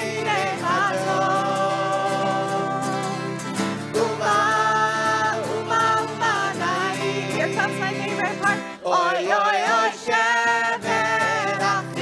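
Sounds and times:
acoustic guitars: 0.0 - 12.0
group singing: 0.0 - 12.0.

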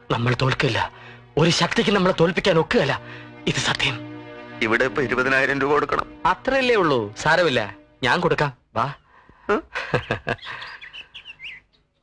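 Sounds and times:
small birds chirping: 8.8 - 12.0.

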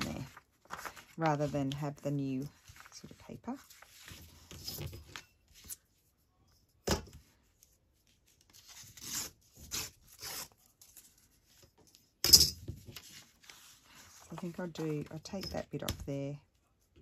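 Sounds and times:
paper rustling: 0.0 - 6.1, 12.8 - 15.4.

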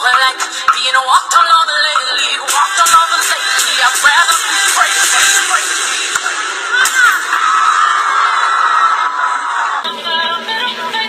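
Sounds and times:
music with a beat: 0.0 - 7.1
high-pitched screaming: 6.3 - 9.9.

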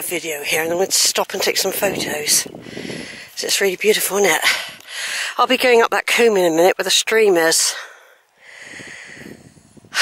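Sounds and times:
soft breath out: 2.6 - 3.3, 7.8 - 10.0.

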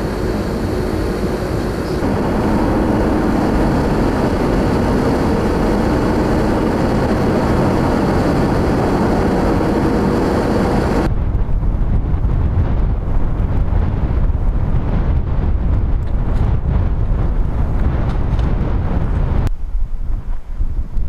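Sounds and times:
road and wind noise inside car: 0.0 - 21.0
wind buffeting microphone: 0.0 - 21.0.

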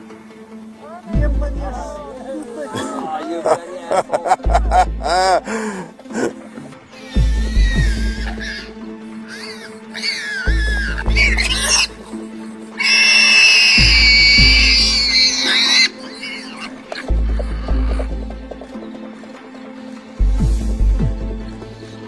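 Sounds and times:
background music: 0.0 - 22.0
warthog squealing: 7.0 - 12.1, 12.8 - 18.1.

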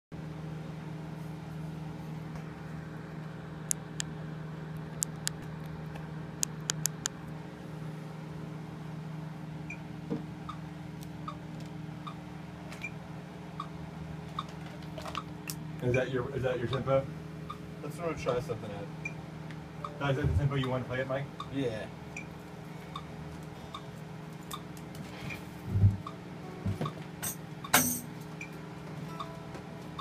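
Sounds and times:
electrical hum: 0.2 - 30.0
sharp clicks: 6.4 - 7.2.

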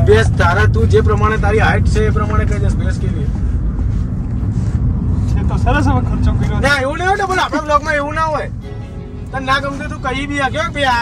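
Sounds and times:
car interior low rumble: 0.0 - 11.0.

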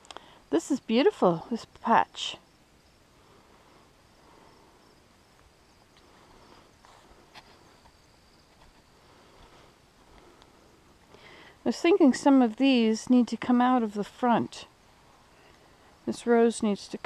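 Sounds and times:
high insect hum: 0.0 - 17.0.

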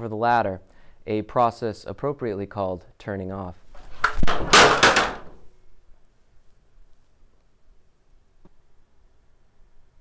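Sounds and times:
stepladder clattering onto hard floor: 4.0 - 5.4.

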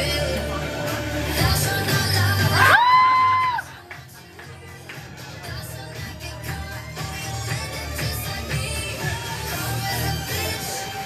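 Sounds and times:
pop song with sung vocal: 0.0 - 11.0.

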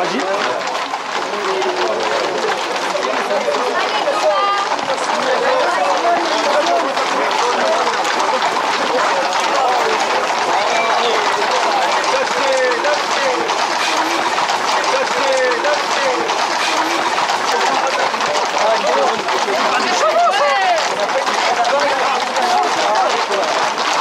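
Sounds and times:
footsteps of people running: 0.0 - 24.0
horse hooves clattering on asphalt: 0.0 - 24.0
crowd shouting: 1.2 - 24.0.

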